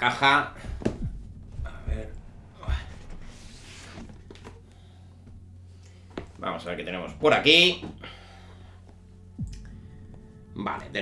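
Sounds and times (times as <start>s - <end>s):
cardboard lid sliding off box: 3.0s - 4.6s.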